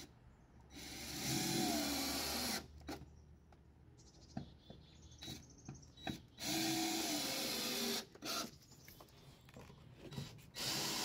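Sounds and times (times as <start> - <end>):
cordless drill driving screw: 6.1 - 8.5, 10.1 - 11.0.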